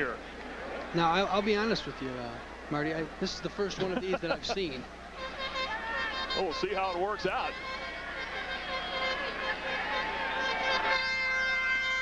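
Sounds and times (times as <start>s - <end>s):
stadium crowd shouting: 5.1s - 12.0s.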